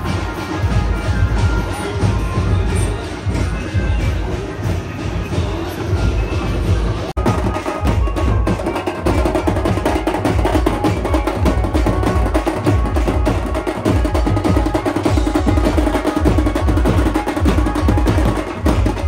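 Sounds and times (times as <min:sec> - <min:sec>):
festival procession music: 0:00.0 - 0:19.0.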